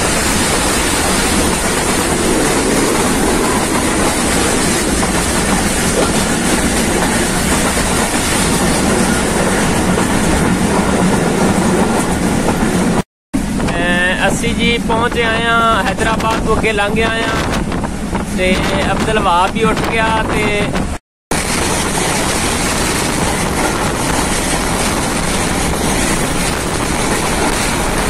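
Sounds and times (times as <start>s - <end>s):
train wheels rumbling on rails: 0.0s - 28.0s.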